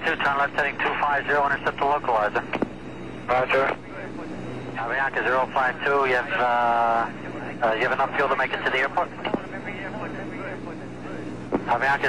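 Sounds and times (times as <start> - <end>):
radio hum and hiss: 0.0 - 12.0
radio click: 2.4 - 2.8, 9.2 - 9.5, 11.5 - 11.9
faint voices: 3.3 - 12.0.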